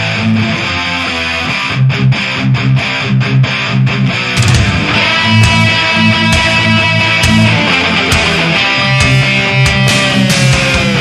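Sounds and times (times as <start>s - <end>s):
distorted electric guitar riffing: 0.0s - 11.0s
heavy metal band: 0.0s - 11.0s.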